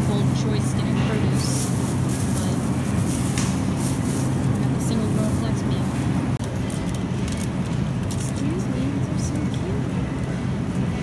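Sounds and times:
indistinct voices of shoppers: 0:00.0 - 0:11.0
steady low hum: 0:00.0 - 0:11.0
plastic bag crinkling: 0:00.2 - 0:07.6.

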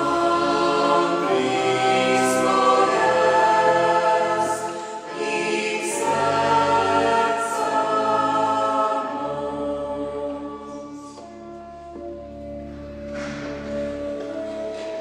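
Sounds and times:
mixed choir singing: 0:00.0 - 0:11.4.

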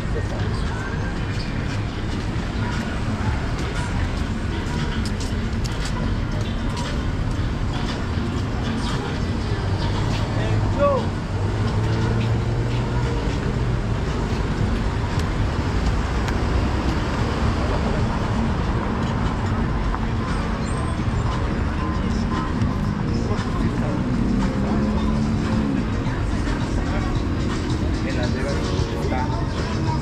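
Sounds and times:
road traffic engines: 0:00.0 - 0:30.0
people talking: 0:08.6 - 0:11.2, 0:20.0 - 0:30.0.

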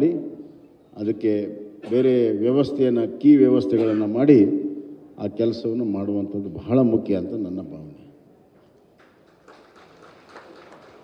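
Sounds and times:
faint background noise: 0:00.0 - 0:11.0.

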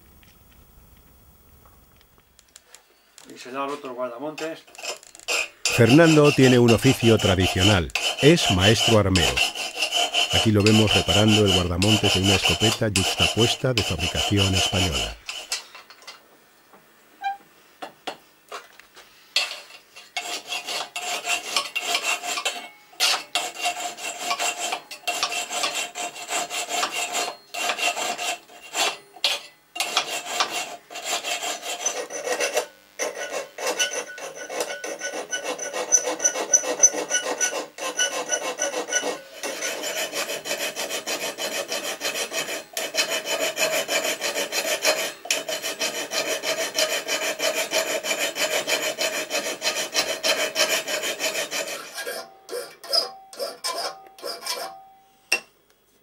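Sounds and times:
file scraping on steel: 0:03.7 - 0:15.9, 0:19.4 - 0:55.4.

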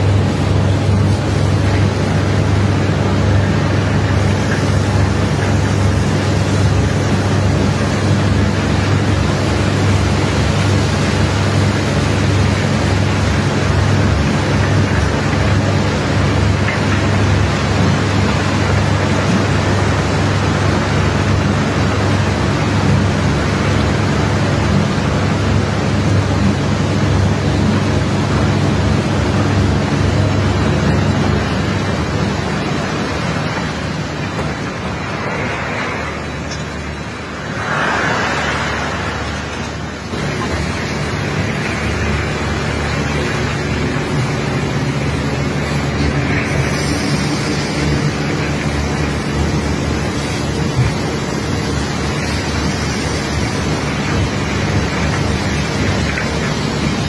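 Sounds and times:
engine or pump drone: 0:00.0 - 0:57.0
high-pressure water jets spraying: 0:00.0 - 0:57.0.

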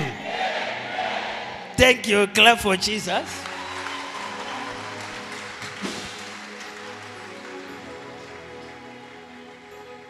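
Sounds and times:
congregation clapping: 0:01.8 - 0:09.7.

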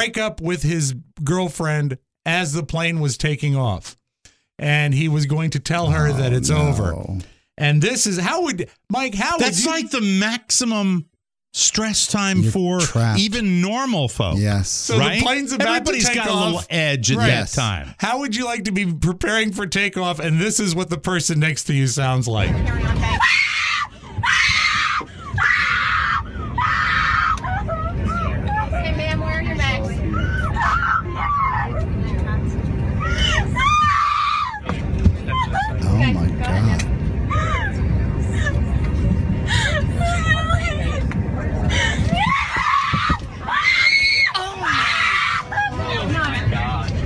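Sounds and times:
aircraft cabin rumble: 0:22.4 - 0:43.6
woman screaming and wailing: 0:23.1 - 0:28.5, 0:33.0 - 0:34.6, 0:35.3 - 0:35.8, 0:41.7 - 0:46.0.

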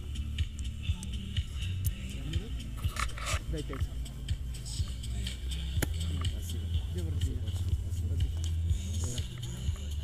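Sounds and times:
music: 0:00.0 - 0:10.0
indistinct voices: 0:00.5 - 0:10.0.

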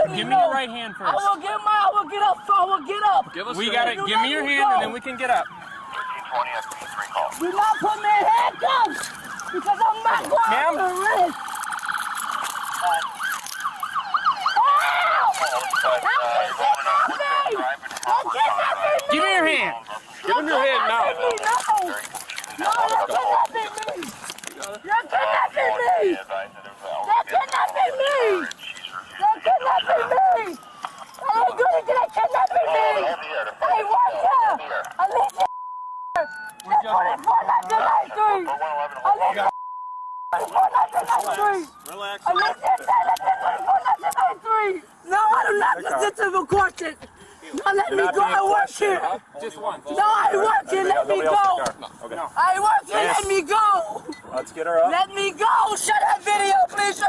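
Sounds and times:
police siren yelping: 0:00.0 - 0:35.5, 0:36.1 - 0:39.6, 0:40.3 - 0:45.9
woman shouting and crying: 0:01.1 - 0:03.2, 0:07.4 - 0:09.0, 0:09.6 - 0:11.4, 0:14.4 - 0:21.9, 0:22.6 - 0:24.1, 0:24.8 - 0:26.2, 0:27.1 - 0:28.4, 0:29.2 - 0:30.6, 0:31.2 - 0:35.5, 0:36.2 - 0:38.5
censor bleep: 0:35.5 - 0:36.6, 0:39.5 - 0:40.4.

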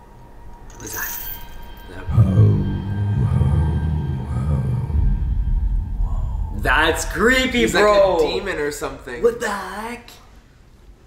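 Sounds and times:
deep low drone: 0:01.8 - 0:08.9
heavy bass rumble: 0:02.1 - 0:08.9.

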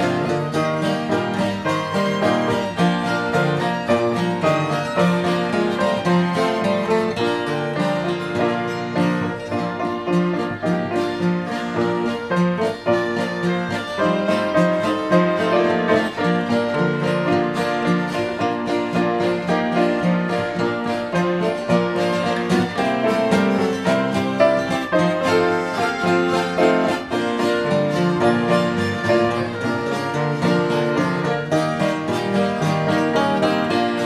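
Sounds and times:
fiddle: 0:00.0 - 0:34.0
piano: 0:00.0 - 0:34.0
strummed acoustic guitar: 0:00.0 - 0:34.0.

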